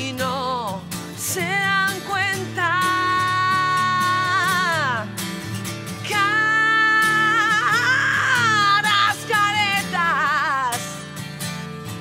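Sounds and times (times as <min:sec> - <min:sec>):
woman singing with vibrato: 0:00.0 - 0:05.2, 0:05.9 - 0:11.1
acoustic guitar: 0:00.0 - 0:12.0.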